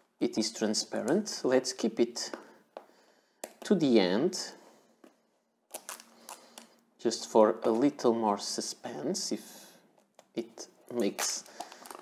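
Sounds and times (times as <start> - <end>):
plastic sleeve crackling: 5.7 - 6.8, 10.2 - 12.0.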